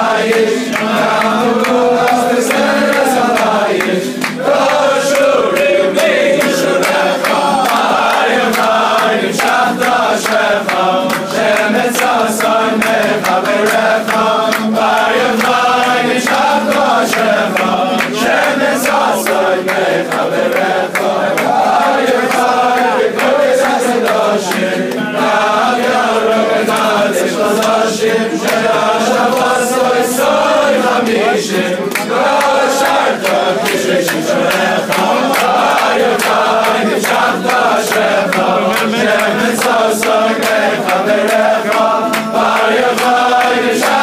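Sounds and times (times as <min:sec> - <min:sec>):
crowd of men singing: 0:00.0 - 0:44.0
hand claps: 0:00.0 - 0:44.0.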